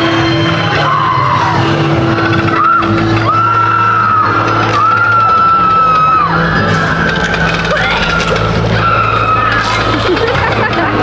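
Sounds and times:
sliding high tones: 0.0 - 11.0
steady low drone: 0.0 - 11.0.

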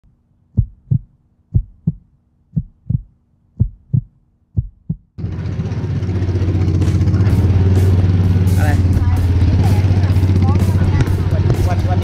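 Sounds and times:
heartbeat deep thumps: 0.5 - 5.2, 8.8 - 12.0.

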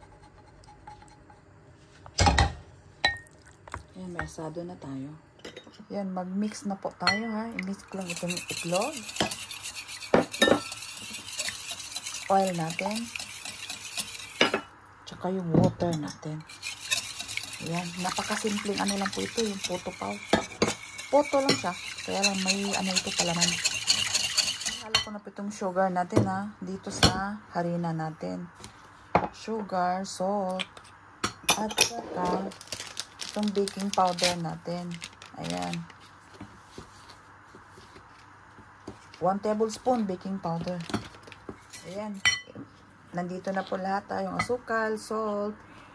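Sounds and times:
whisk clicking against glass bowl: 16.6 - 24.9
paper packet rustling: 32.4 - 36.0.

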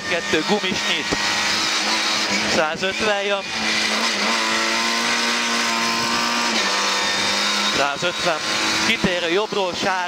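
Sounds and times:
car engine at high revs: 0.0 - 10.0.

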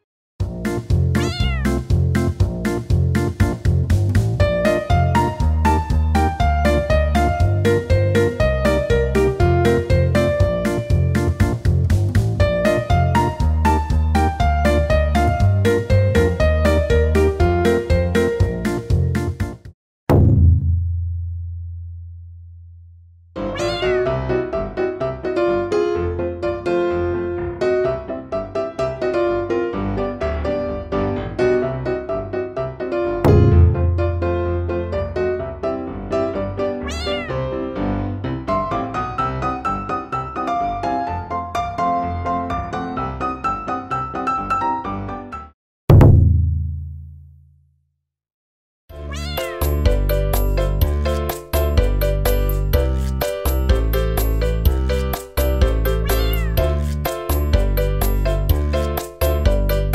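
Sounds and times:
light piano music: 0.5 - 19.6, 23.4 - 45.5, 49.0 - 59.9
meow-like call falling in pitch: 1.2 - 1.8, 23.4 - 24.2, 36.8 - 37.5, 49.0 - 49.8, 56.0 - 56.7
deep impact hit: 20.1 - 21.8, 33.3 - 34.8, 45.9 - 47.4.

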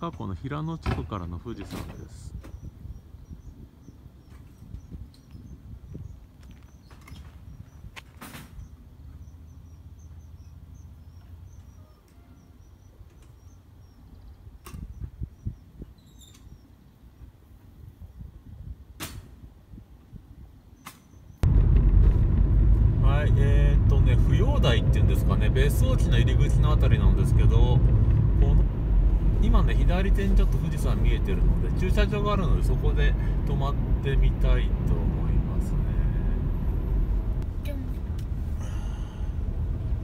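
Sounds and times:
road and engine noise in car: 1.1 - 14.3, 21.2 - 40.0
faint high chirping: 8.6 - 17.3
low rumble: 21.4 - 40.0.

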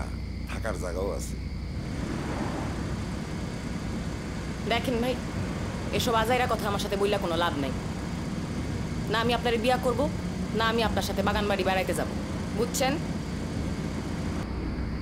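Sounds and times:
vehicle engine rumble: 0.0 - 15.0.

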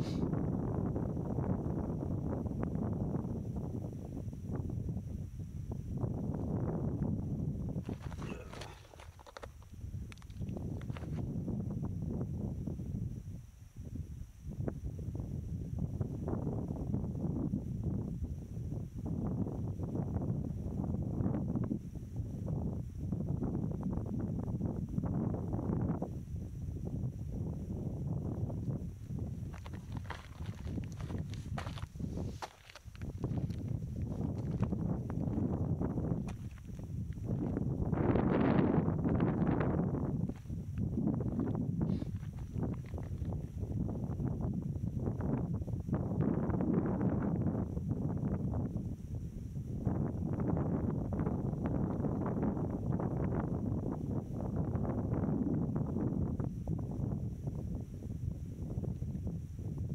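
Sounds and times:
wind buffeting microphone: 0.0 - 59.9
footsteps crunching on salt crust: 7.8 - 11.2, 29.5 - 35.5, 36.2 - 37.4, 41.4 - 43.4.

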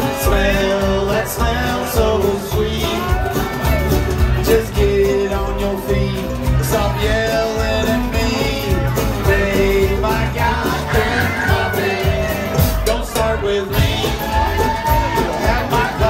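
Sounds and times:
country bluegrass band playing: 0.0 - 16.0.

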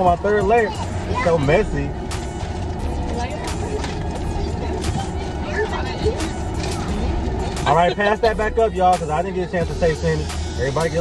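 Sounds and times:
low hum in car cabin: 0.0 - 11.0.

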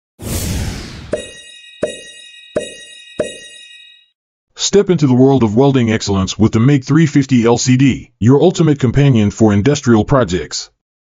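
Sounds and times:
sharp hits: 0.2 - 3.6
high ringing tone: 1.0 - 4.2.

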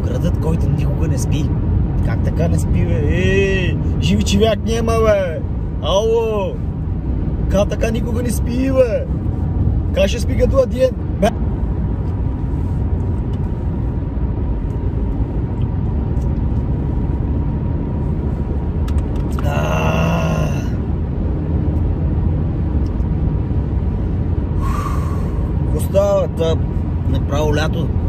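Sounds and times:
car road and engine rumble: 0.0 - 28.0.

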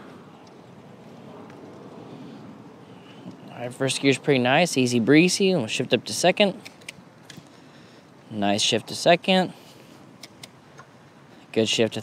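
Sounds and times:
bike tires rolling on pavement: 0.0 - 6.2.

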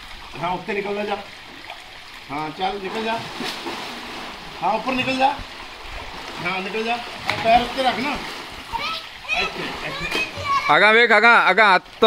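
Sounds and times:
water splashing in a pool: 0.0 - 12.0
children's voices: 8.7 - 10.8.

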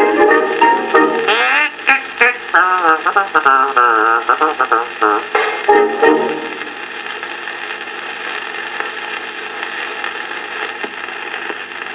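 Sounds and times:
record surface hiss and crackle: 0.0 - 11.9
song from gramophone record: 0.0 - 11.9.

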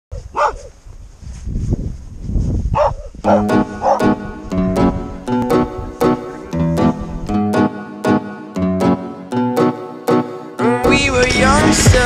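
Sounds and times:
dog barking: 0.2 - 0.8, 2.8 - 4.1
plucked guitar music: 3.2 - 12.0.

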